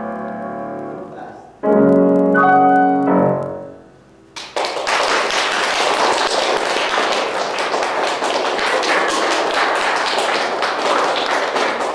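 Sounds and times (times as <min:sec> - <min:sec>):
audience applauding: 0:04.4 - 0:11.9.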